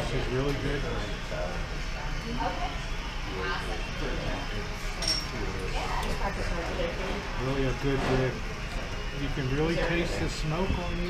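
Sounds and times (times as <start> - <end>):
indistinct diners talking: 0.0 - 11.0
steady low hum: 0.0 - 11.0.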